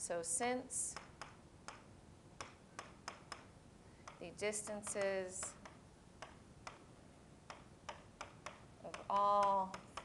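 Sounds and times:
stylus tapping on whiteboard: 0:00.9 - 0:10.0.

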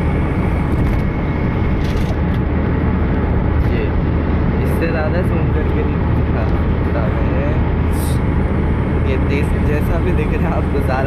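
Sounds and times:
vehicle driving on highway: 0:00.0 - 0:11.0.

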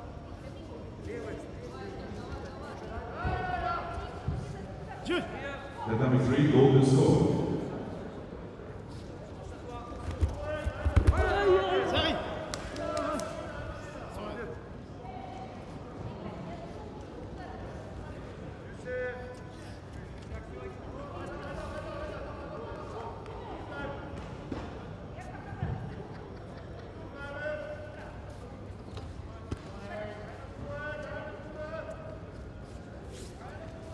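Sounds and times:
voices calling out in a hall: 0:00.0 - 0:33.9.

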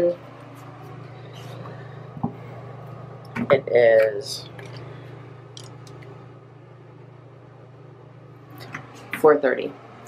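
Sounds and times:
electric fan running: 0:00.0 - 0:10.0.

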